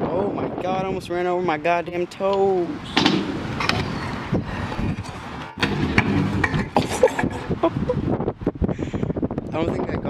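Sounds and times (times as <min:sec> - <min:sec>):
scooter and rider hitting ground: 0:02.9 - 0:03.9.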